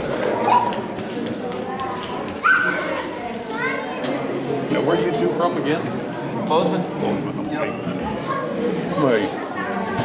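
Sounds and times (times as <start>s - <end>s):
background chatter: 0.0s - 10.0s
children playing and calling out: 0.2s - 1.0s, 1.9s - 4.6s, 7.8s - 10.0s
high-pitched child's shout: 2.4s - 3.0s.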